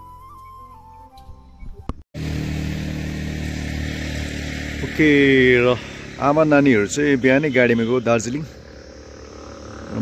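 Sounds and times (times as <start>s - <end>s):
flute music: 0.0s - 2.0s
motorcycle engine running: 2.2s - 10.0s.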